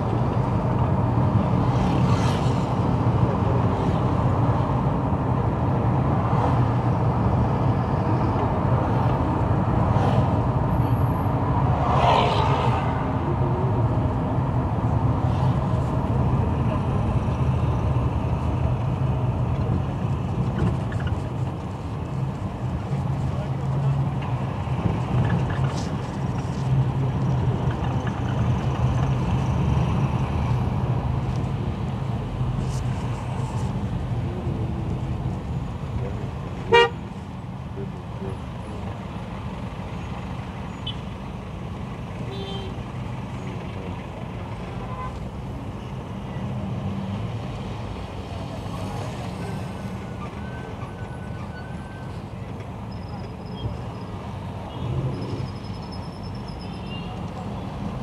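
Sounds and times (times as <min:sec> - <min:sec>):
car engine and road rumble: 0:00.0 - 0:58.0
car horn toots: 0:36.7 - 0:37.0.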